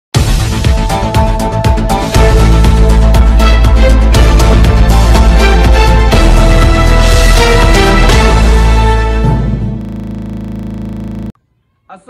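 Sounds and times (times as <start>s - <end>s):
electronic music with heavy bass: 7.7s - 11.3s.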